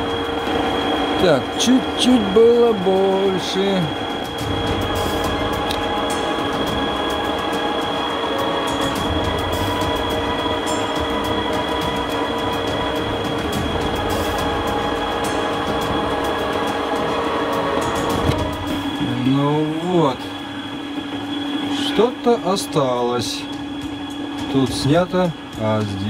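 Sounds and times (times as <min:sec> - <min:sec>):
metal lathe whining: 0:00.0 - 0:26.0.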